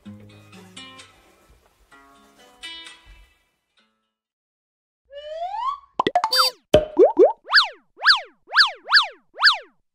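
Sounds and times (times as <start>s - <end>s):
clicks and pops: 6.0s - 7.4s.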